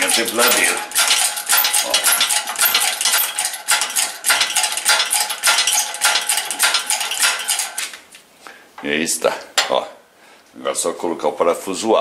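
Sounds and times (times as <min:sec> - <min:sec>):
metallic clinking and rattling: 0:00.0 - 0:08.0.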